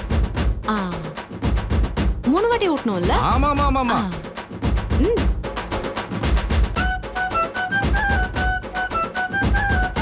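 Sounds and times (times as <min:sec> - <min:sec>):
low drum beats: 0:00.0 - 0:07.0.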